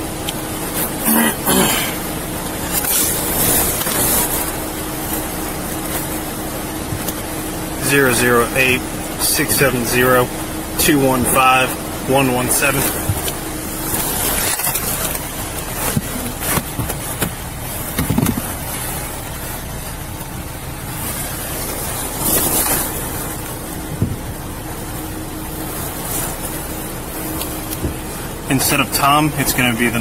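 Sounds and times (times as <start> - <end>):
steady background hum: 0.0 - 30.0.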